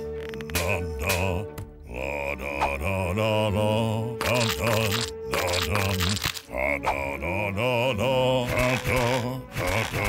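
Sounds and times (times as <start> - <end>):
man singing with heavy vibrato: 0.6 - 10.0.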